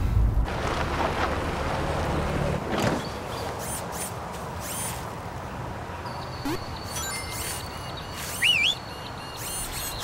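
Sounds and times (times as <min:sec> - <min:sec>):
van pulling over and stopping: 0:00.0 - 0:03.5.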